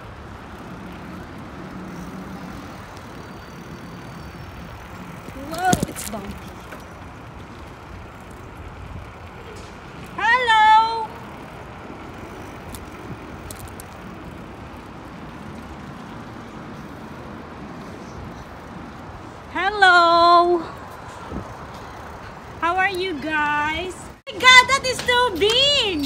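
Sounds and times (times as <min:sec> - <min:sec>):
rolling over bumpy pavement: 0:00.0 - 0:26.0.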